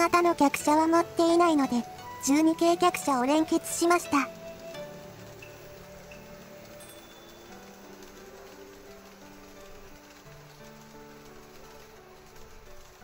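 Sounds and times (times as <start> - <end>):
model train running on track: 0.0 - 13.0
soft background music: 0.0 - 13.0.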